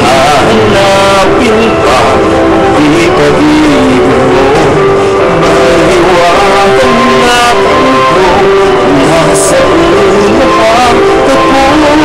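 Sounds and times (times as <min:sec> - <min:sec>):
backing music: 0:00.0 - 0:12.0
person singing a slow song: 0:00.0 - 0:12.0.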